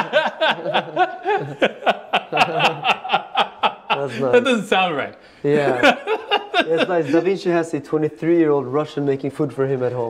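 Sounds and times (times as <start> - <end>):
men laughing: 0.0 - 7.4.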